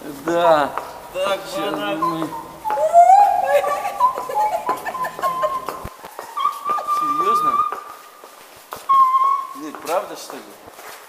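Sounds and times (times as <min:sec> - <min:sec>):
group chatter: 0:00.0 - 0:08.1
footsteps: 0:00.0 - 0:11.0
high-pitched voice whining: 0:01.2 - 0:05.8.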